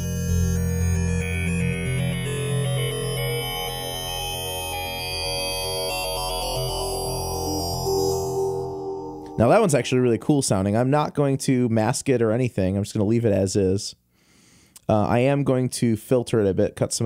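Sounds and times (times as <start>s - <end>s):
synthesizer held tones: 0.0s - 10.3s.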